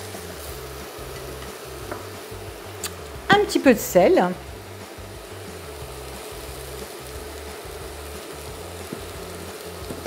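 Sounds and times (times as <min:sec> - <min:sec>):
squash sizzling in a pan: 0:00.0 - 0:10.0.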